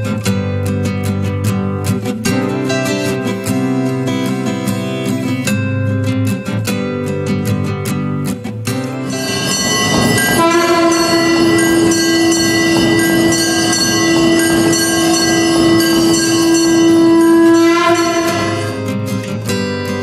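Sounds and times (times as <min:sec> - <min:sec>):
temple bells ringing: 0:08.9 - 0:19.3
conch shell blown: 0:09.0 - 0:19.1.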